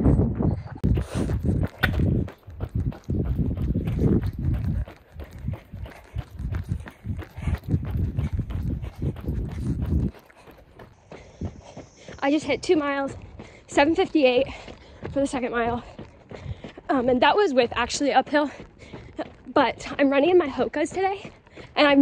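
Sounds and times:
wind on microphone: 0.0s - 13.4s
running footsteps on asphalt: 0.2s - 22.0s.

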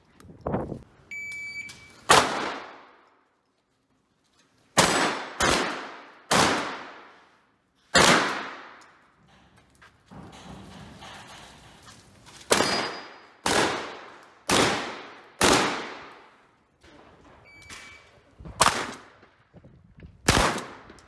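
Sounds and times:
short electronic beep: 1.1s - 2.0s
shotgun shots: 2.1s - 2.9s, 4.8s - 7.2s, 7.9s - 8.8s, 12.5s - 16.3s, 18.6s - 19.2s, 20.2s - 21.0s.

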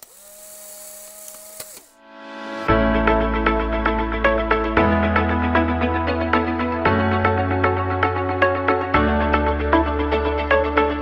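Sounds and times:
click: 1.2s - 1.9s.

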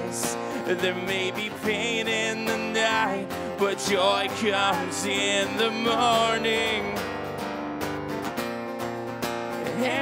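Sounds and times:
person singing: 0.0s - 7.0s, 9.6s - 10.0s
acoustic guitar strumming: 0.0s - 10.0s.

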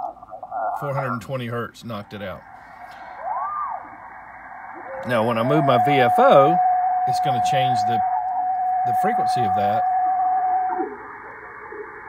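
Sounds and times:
receiver hiss: 0.0s - 12.0s
steady heterodyne whistle: 2.4s - 12.0s.

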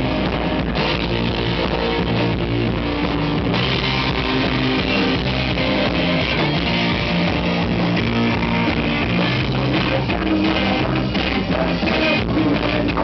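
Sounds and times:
punk rock band playing live: 0.0s - 13.0s.

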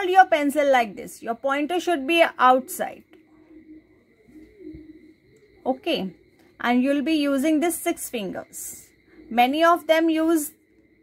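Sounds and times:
faint low cooing: 3.1s - 6.3s.

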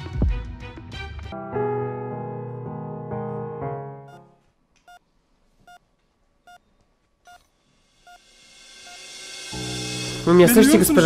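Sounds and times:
patient monitor beeping: 4.1s - 5.9s, 6.5s - 7.5s.

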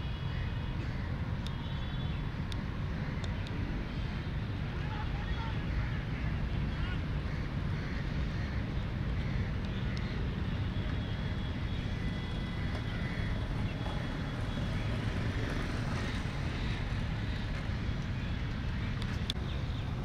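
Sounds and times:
continuous low rumble: 0.0s - 20.0s.

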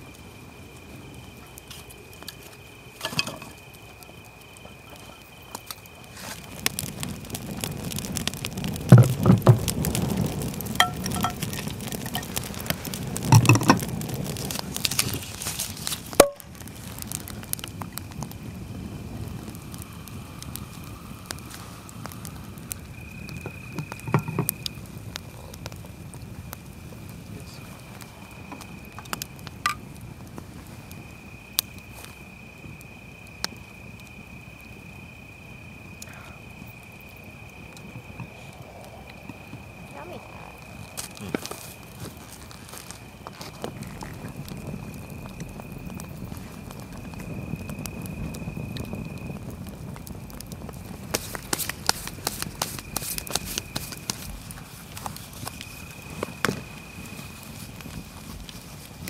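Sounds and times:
campfire crackling and popping: 0.0s - 59.0s
high insect trill: 0.0s - 59.0s
wood knocking at fire: 1.6s - 4.0s, 8.2s - 18.0s, 23.4s - 24.8s, 28.4s - 30.5s, 50.4s - 56.8s.

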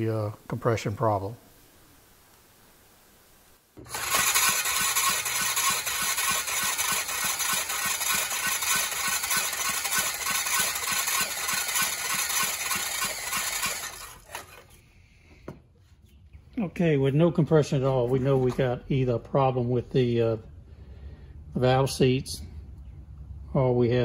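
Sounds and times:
engine cranking with starter whir: 3.8s - 14.8s.

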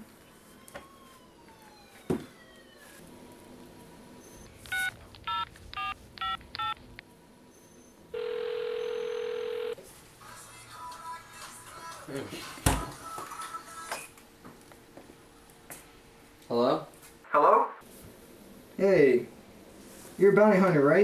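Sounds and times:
phone ringback tone: 4.7s - 6.8s, 8.1s - 9.8s
touch-tone keypad beeps: 4.7s - 6.8s.

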